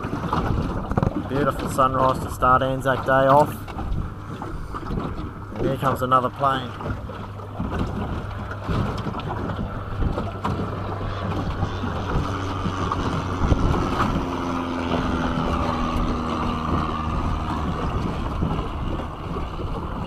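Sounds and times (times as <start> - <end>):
light plane engine drone: 0.0 - 20.0
outboard motor running: 0.0 - 20.0
wind buffeting microphone: 0.0 - 20.0.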